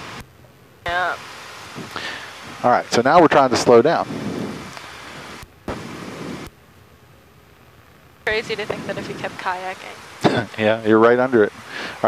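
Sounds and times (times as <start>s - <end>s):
aircraft engine and wind hiss: 0.0s - 12.0s.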